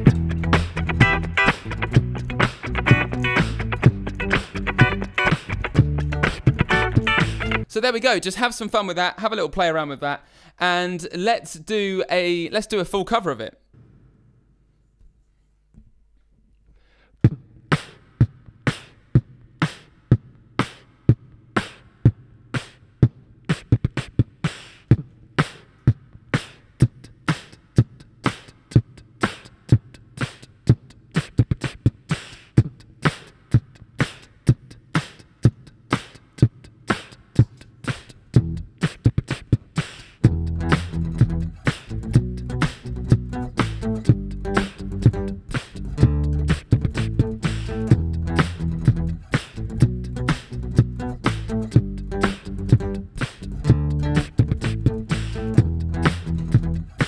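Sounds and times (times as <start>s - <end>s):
beatboxed drum beat: 0.0s - 7.7s, 17.2s - 57.0s.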